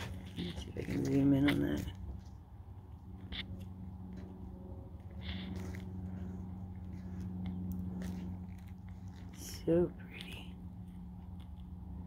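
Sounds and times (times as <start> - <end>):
faint rustles and scrapes: 0.0 - 11.6
steady low hum: 0.0 - 12.0.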